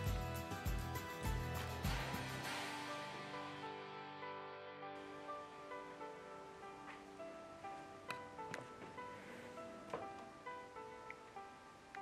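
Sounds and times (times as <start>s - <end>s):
soft sustained background music: 0.0s - 12.0s.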